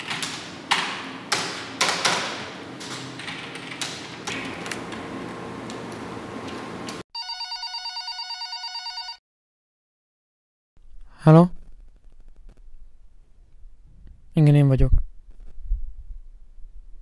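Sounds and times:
phone ringing with pulsing trill: 7.2s - 9.2s.

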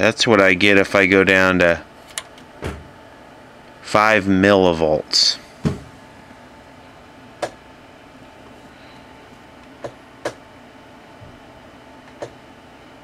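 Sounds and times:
low equipment hum: 0.0s - 13.0s.

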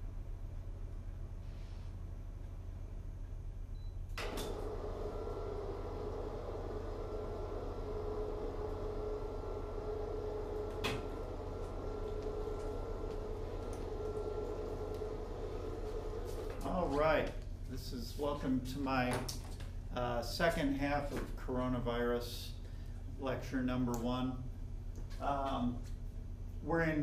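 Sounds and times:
low electrical hum: 0.0s - 27.0s
mid-pitched hum: 0.0s - 27.0s.

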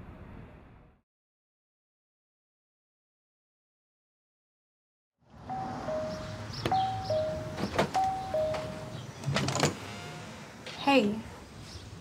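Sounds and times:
two-tone doorbell chime: 5.5s - 9.0s.

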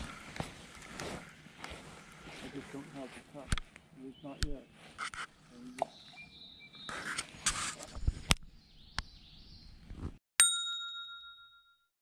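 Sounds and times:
faint outdoor sound: 0.0s - 11.5s
bright bell-like ding: 10.4s - 11.9s.

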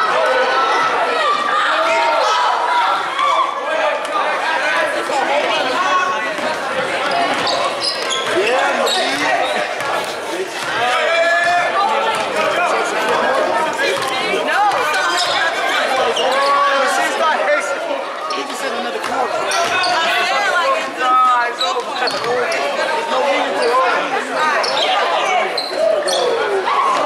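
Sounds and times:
spectators talking and calling out: 0.0s - 27.0s.

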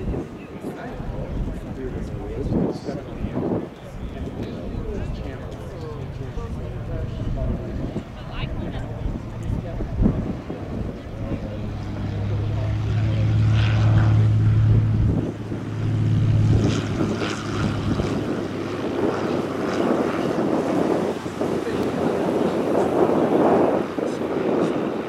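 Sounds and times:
propeller plane engine droning: 0.0s - 25.0s
wind buffeting microphone: 0.0s - 25.0s.

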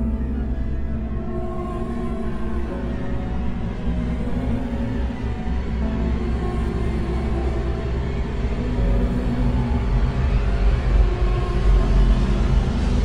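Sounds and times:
deep rumbling drone: 0.0s - 13.0s.

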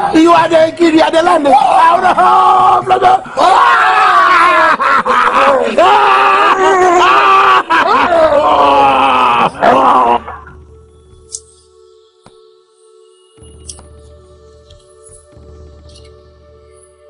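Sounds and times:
man groaning and wailing: 1.5s - 10.5s.

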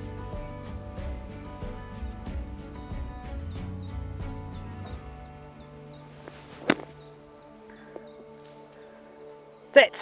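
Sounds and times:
background music with held tones: 0.0s - 10.0s
golf club hitting ball from sand: 6.2s - 7.1s.

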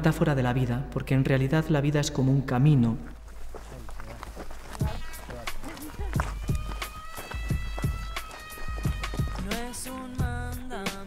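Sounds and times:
footsteps on gravel: 3.0s - 11.0s
music with held notes: 5.6s - 11.0s.

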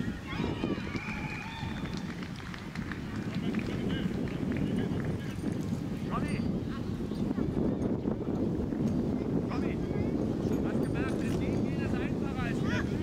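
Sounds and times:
children calling and shouting: 0.0s - 1.7s.

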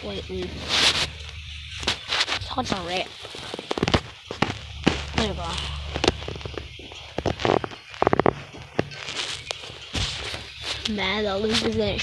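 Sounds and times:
sharp crackles and knocks: 0.0s - 12.0s.

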